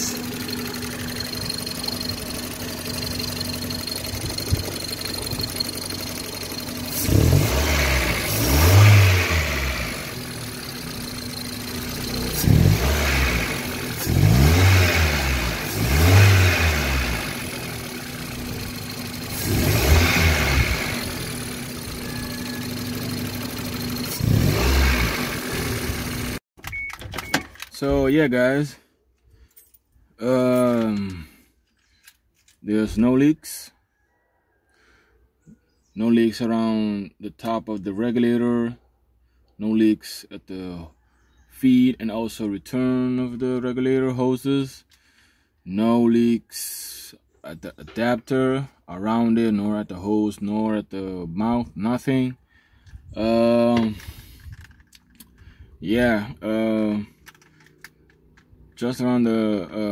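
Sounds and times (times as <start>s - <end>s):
car engine idling and revving: 0.0s - 26.4s, 56.8s - 59.3s.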